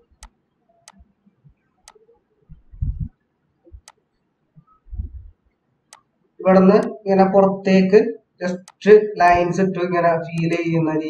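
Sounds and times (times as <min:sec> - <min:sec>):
faint sharp clicks: 0:08.6 - 0:08.9.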